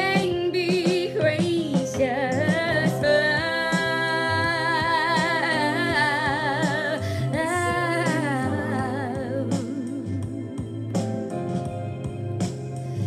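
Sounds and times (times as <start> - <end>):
woman singing with vibrato: 0.0 - 10.5
quiet instrumental backing: 0.0 - 13.0.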